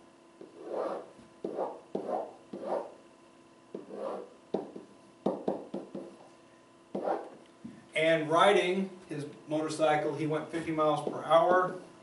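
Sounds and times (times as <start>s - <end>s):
pen scraping and tapping on whiteboard: 0.4s - 2.9s, 3.8s - 6.1s, 7.0s - 7.4s.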